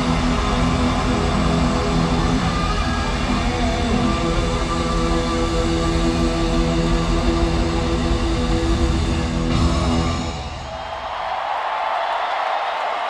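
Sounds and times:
loud distorted electric guitars: 0.0s - 10.8s.

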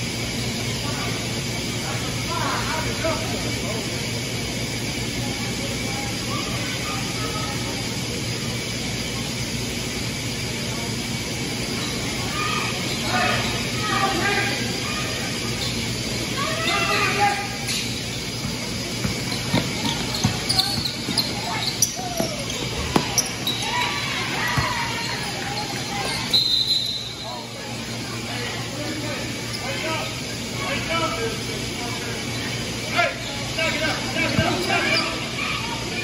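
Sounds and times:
sneakers squeaking: 11.2s - 27.9s, 29.2s - 30.5s, 31.6s - 36.0s
people shouting: 12.2s - 15.3s, 16.3s - 17.6s, 21.5s - 26.0s.

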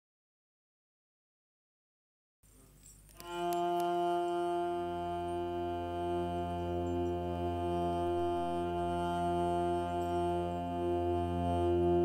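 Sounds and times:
hurdy-gurdy drone with held notes: 3.1s - 12.0s
deep low drone: 3.2s - 12.0s.

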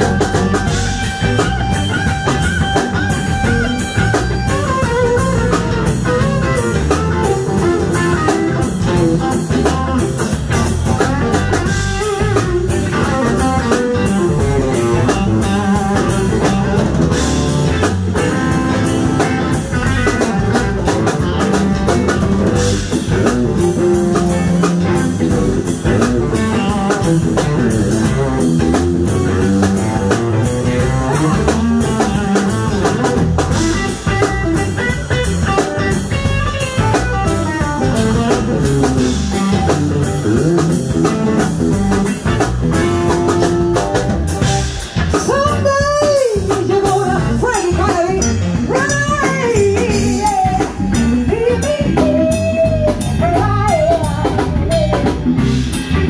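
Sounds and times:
bass guitar: 0.0s - 56.0s
drum kit: 0.0s - 56.0s
electric guitar: 0.0s - 56.0s.

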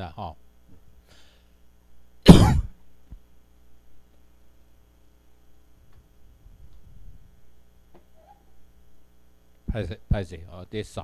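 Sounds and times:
man coughing: 2.3s - 2.8s.

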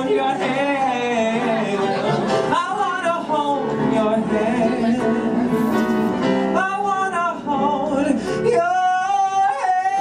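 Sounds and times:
piano accompaniment: 0.0s - 8.7s.

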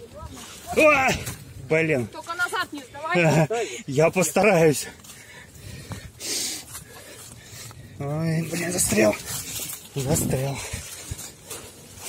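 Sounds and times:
runner breathing hard: 4.8s - 8.2s, 10.4s - 12.0s.

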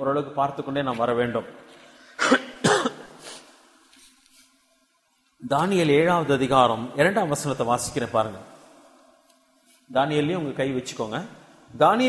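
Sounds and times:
man coughing: 2.2s - 3.4s.

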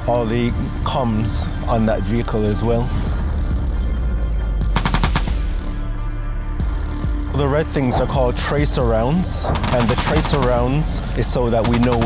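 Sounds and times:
music with deep bass: 0.0s - 12.0s.

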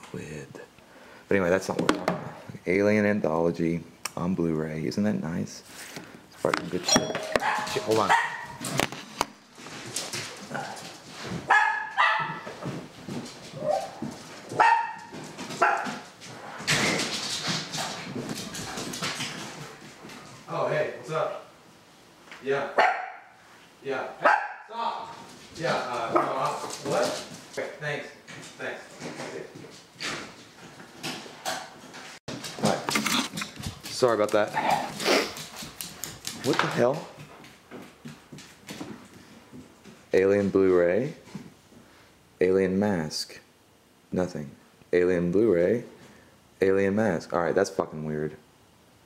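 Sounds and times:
camera handling knocks and rustling: 1.8s - 2.3s
dog barking: 7.4s - 8.6s, 11.5s - 12.5s, 14.6s - 16.0s, 22.8s - 23.4s, 24.2s - 24.7s.

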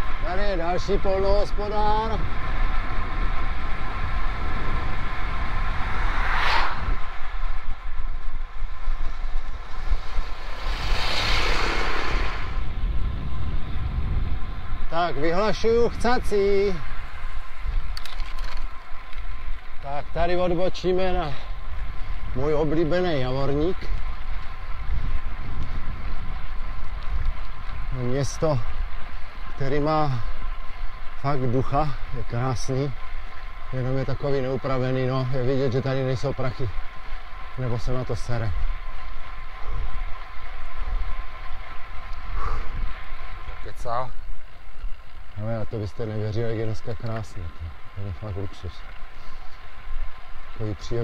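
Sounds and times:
bike tyres on asphalt: 0.0s - 51.0s
wind buffeting microphone: 0.0s - 51.0s
faint clicks: 17.7s - 19.9s, 42.0s - 42.8s.

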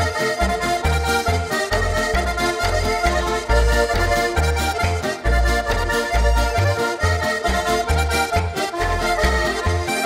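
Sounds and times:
button accordions playing folk tune: 0.0s - 10.0s
pulsing bass line: 0.0s - 10.0s.

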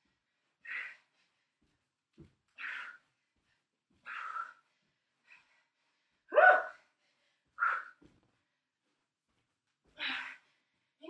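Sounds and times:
woman breathing hard: 0.0s - 1.9s, 2.5s - 8.8s.

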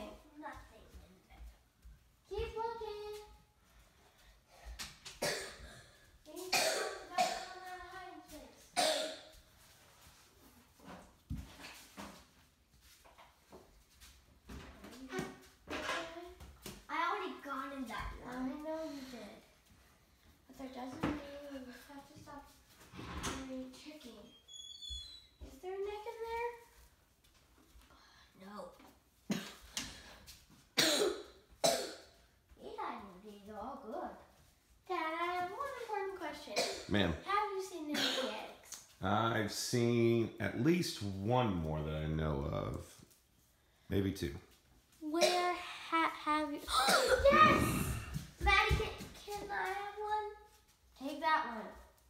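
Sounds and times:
person coughing: 6.5s - 7.5s, 8.8s - 9.2s, 30.8s - 32.0s, 46.8s - 48.1s.

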